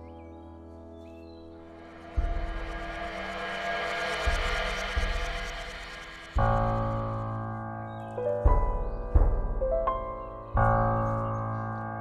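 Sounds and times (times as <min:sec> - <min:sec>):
dense rushing drone: 0:01.6 - 0:07.6
sustained tones: 0:01.6 - 0:07.6
deep boom: 0:01.7 - 0:07.6.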